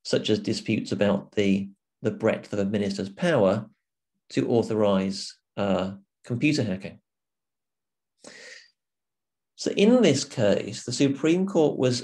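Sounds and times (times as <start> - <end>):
man's intake of breath: 8.2 - 8.8.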